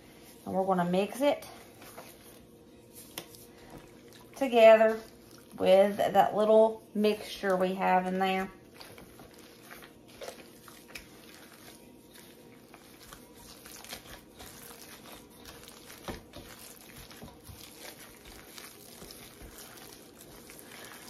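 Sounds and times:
wet squishing of kneaded meat: 0.0 - 21.0.

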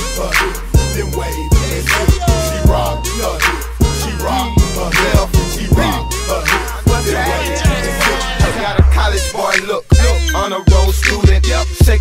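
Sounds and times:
hi-hats: 0.0 - 12.0
hip-hop beat: 0.0 - 12.0.

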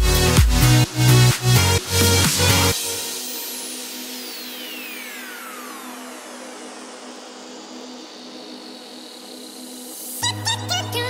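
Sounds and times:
noise sweep with falling tones: 1.8 - 10.6.

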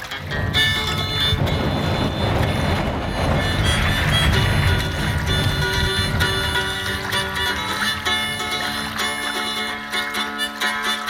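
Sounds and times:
wind buffeting microphone: 0.0 - 10.4
guitalele strumming: 0.0 - 11.0.

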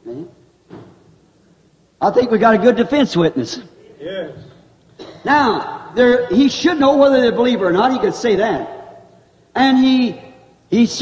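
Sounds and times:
faint recording hiss: 0.0 - 11.0.

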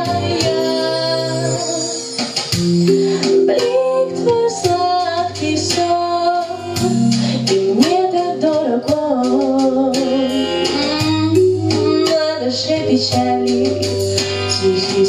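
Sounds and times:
woman singing into a microphone: 0.0 - 2.2, 2.9 - 15.0
backing track with bass and guitar: 0.0 - 15.0.

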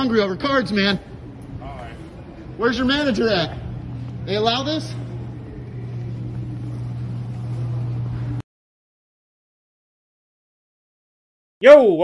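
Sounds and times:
low hum of store background: 0.0 - 8.4.

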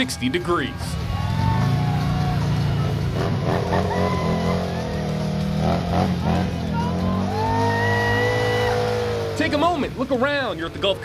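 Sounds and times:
motorcycle engine revving: 1.0 - 10.9.

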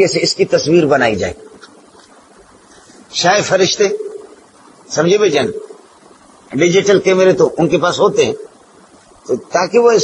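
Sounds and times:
man speaking: 0.0 - 1.6, 3.1 - 4.2, 4.9 - 5.6, 6.5 - 8.5, 9.3 - 10.0.

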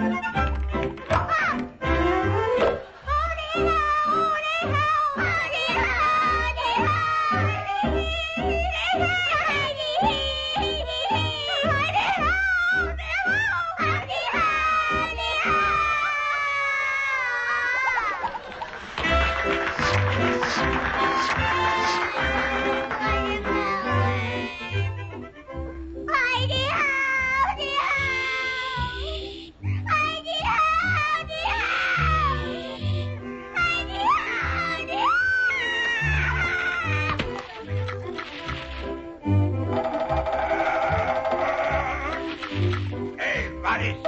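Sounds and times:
cartoon soundtrack music: 0.0 - 18.4, 19.0 - 44.0.

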